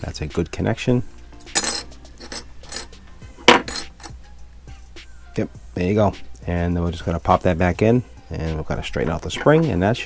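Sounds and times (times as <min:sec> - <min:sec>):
metal clinks and taps: 0:01.6 - 0:04.2.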